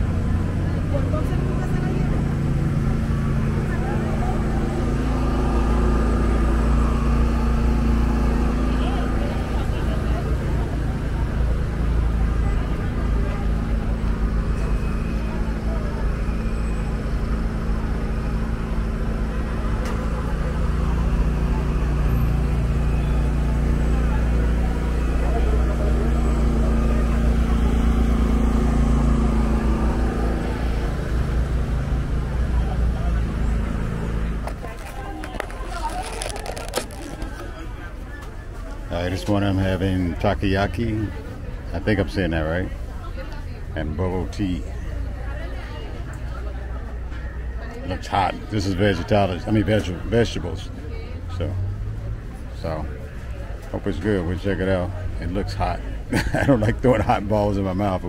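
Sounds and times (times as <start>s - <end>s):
people talking: 0.0s - 18.4s, 19.5s - 28.6s, 29.2s - 58.0s
engine hum and rumble: 0.0s - 58.0s.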